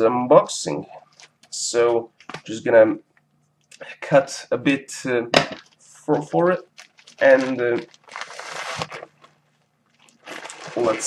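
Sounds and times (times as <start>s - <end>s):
plastic package crinkling: 5.6s - 11.0s.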